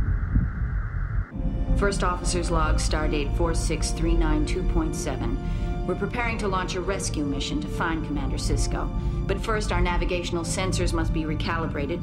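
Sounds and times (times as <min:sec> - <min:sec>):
low pulsing rumble: 0:00.0 - 0:12.0
steady music tones: 0:01.3 - 0:12.0
woman speaking: 0:01.8 - 0:12.0.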